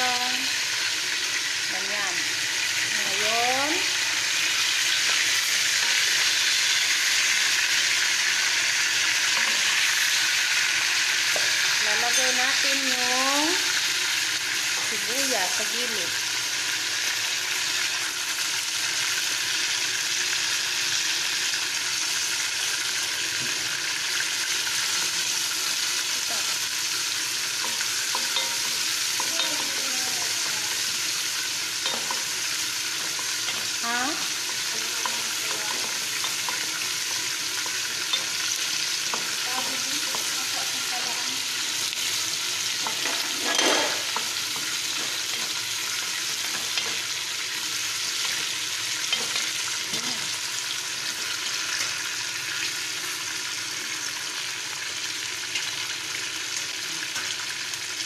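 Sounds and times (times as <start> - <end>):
food sizzling in a pot: 0.0 - 58.0.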